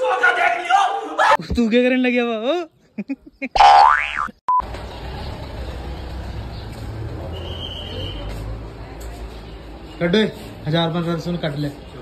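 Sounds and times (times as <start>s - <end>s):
cartoon boing sound effect: 3.6s - 4.4s.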